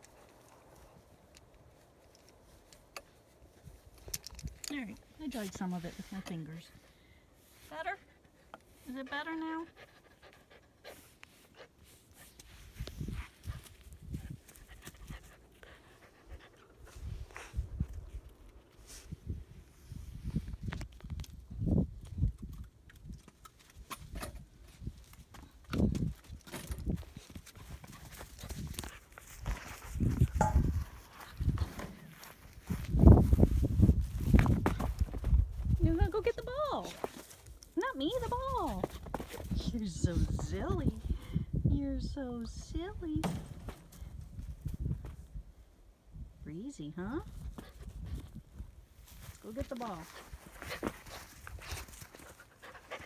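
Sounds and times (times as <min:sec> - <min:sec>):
woman speaking: 0:04.7 - 0:06.8, 0:07.7 - 0:08.1, 0:08.8 - 0:09.7, 0:35.8 - 0:37.0, 0:37.8 - 0:39.0, 0:39.6 - 0:43.4, 0:46.4 - 0:47.3, 0:49.4 - 0:50.2
wind on microphone: 0:12.6 - 0:15.3, 0:16.8 - 0:23.2, 0:25.7 - 0:31.8, 0:32.5 - 0:36.6, 0:38.2 - 0:46.4, 0:47.2 - 0:48.8.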